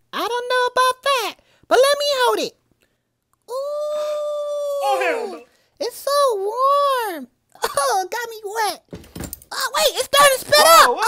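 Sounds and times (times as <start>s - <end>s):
dog howling: 3.9s - 5.5s.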